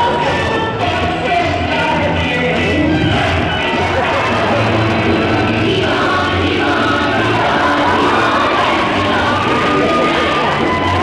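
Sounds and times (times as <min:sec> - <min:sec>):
music with sung vocal: 0:00.0 - 0:11.0.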